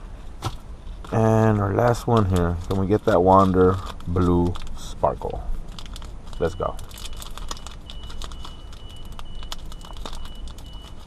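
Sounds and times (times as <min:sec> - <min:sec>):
card pack wrapper crinkling: 0:00.4 - 0:11.0.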